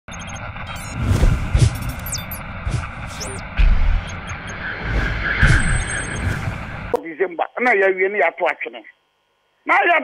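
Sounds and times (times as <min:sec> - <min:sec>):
short high electronic beeps: 0:00.1 - 0:02.5, 0:03.1 - 0:06.8
whoosh: 0:02.7 - 0:06.9.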